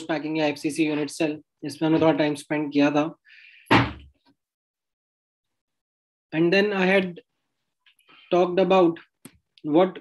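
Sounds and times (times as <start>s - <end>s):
sudden thud: 3.7s - 4.1s.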